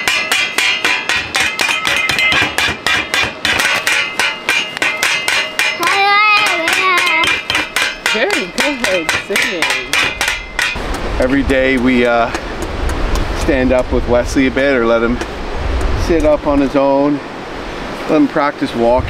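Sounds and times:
wooden spoons drumming on metal pot: 0.0s - 13.0s.

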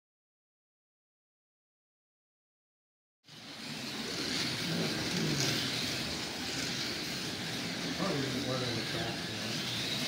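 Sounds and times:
slot car motors whining: 3.3s - 10.0s.

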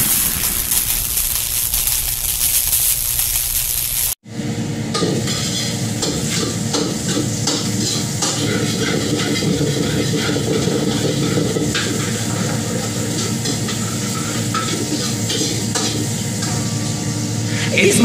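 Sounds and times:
frying sizzle: 0.0s - 4.2s, 5.0s - 18.0s.

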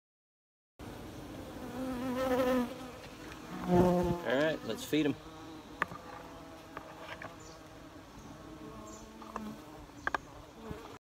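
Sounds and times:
honeybees buzzing: 0.8s - 11.0s.

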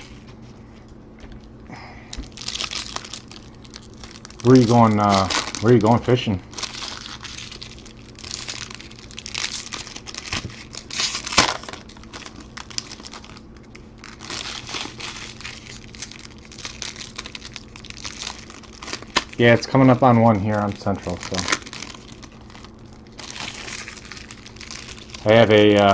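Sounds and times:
foil wrappers crinkling and tearing: 2.1s - 25.9s.

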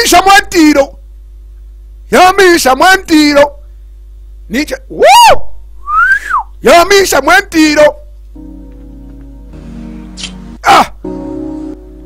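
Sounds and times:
whistle rising and falling: 5.8s - 6.5s
high vocal cry: 10.6s - 11.0s.

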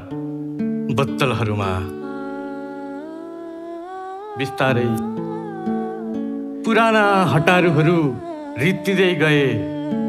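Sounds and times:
held chord music: 0.0s - 10.0s
person humming: 7.0s - 10.0s.

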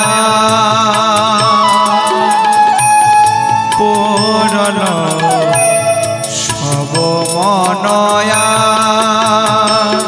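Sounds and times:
man singing devotional song: 0.0s - 10.0s
tabla and drum pad beat: 0.0s - 10.0s.

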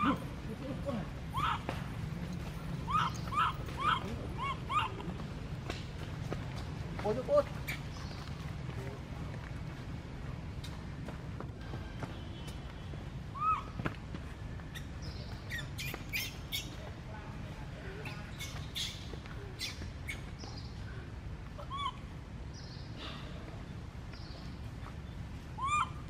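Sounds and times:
baby monkey crying: 0.0s - 0.3s, 1.2s - 1.7s, 2.8s - 5.2s, 13.3s - 13.8s, 19.6s - 20.3s, 21.5s - 22.1s, 25.6s - 26.0s.

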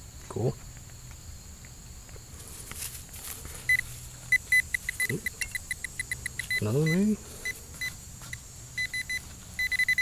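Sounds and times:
metal detector rapid beeps: 3.7s - 10.0s.

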